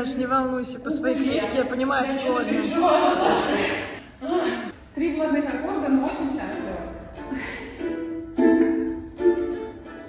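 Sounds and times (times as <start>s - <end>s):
ukulele strumming: 6.5s - 10.0s.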